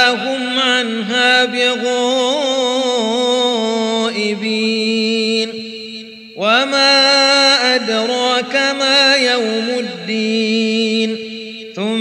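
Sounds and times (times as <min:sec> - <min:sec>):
man reciting melodically: 0:00.0 - 0:12.0.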